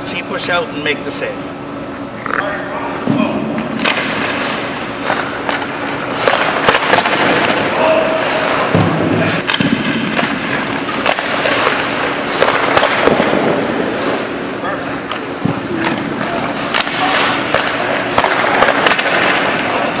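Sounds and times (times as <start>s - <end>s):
pucks struck by stick clacking: 3.1s - 7.8s, 8.4s - 13.7s, 15.0s - 20.0s.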